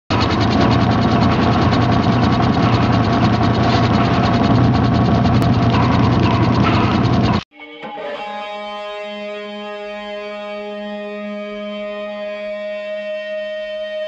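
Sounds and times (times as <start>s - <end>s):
guitar ringing out: 0.2s - 14.0s.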